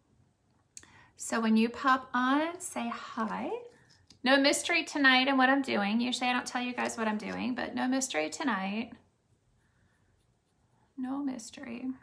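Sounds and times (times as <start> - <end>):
applicator rubbing on skin: 6.0 - 11.3.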